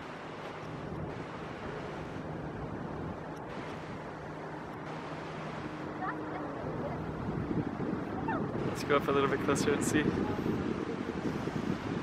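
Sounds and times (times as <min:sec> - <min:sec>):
wind and water hiss: 0:00.0 - 0:12.0.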